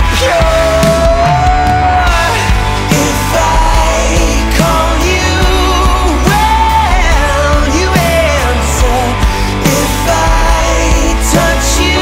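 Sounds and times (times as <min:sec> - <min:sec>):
rock band music: 0:00.0 - 0:12.0.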